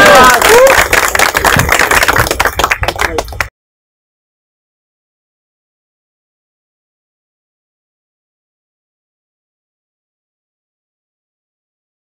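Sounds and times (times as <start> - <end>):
people clapping: 0.0 - 3.5.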